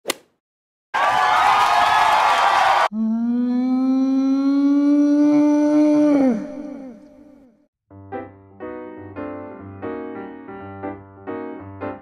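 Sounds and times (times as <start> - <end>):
crowd cheering: 0.9 - 2.9.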